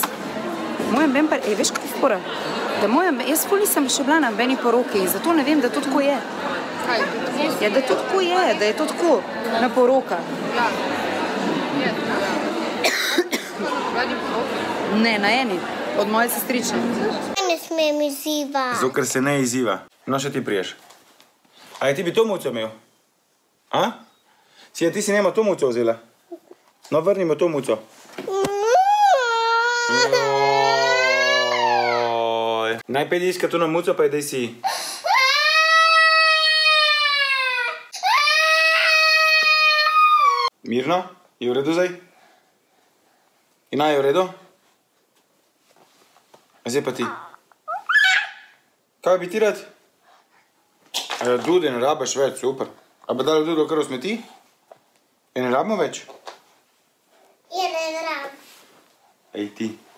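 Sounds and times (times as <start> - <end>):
background chatter of voices: 0.0 - 17.6
woman coughing: 12.8 - 13.7
young child crying: 28.3 - 32.3, 35.0 - 40.5, 47.7 - 48.5.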